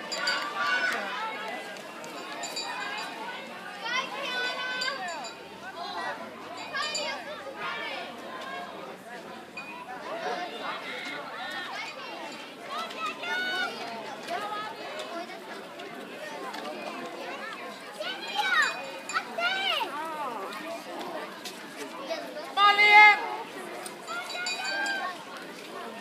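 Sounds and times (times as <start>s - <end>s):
spectators chattering: 0.0s - 26.0s.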